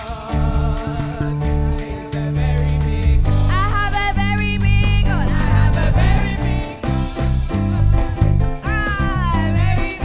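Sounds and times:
band playing: 0.0 - 10.0
group singing gospel: 0.0 - 10.0.

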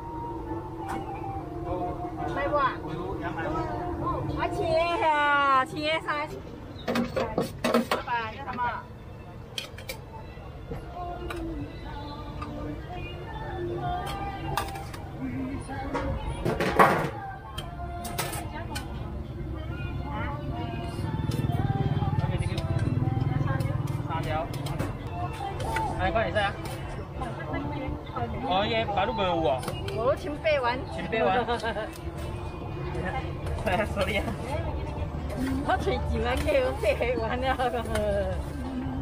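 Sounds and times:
music: 0.0 - 39.0.

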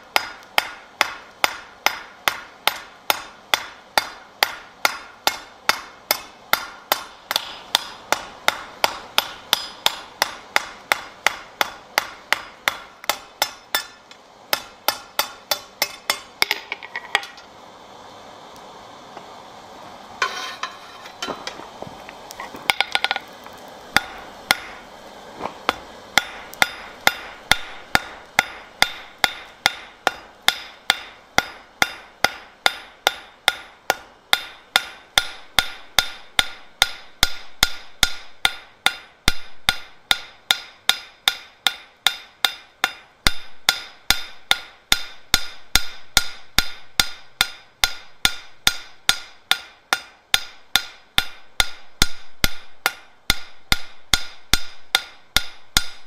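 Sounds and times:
hammer striking steel on anvil: 0.0 - 17.4, 20.2 - 21.6, 22.7 - 23.3, 23.9 - 24.9, 25.6 - 56.0.

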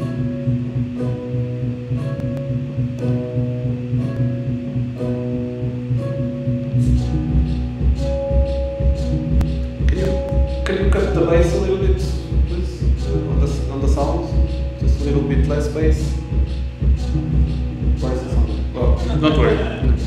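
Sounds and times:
plucked synth notes: 0.0 - 20.0
deep pulsing bass: 5.6 - 20.0.

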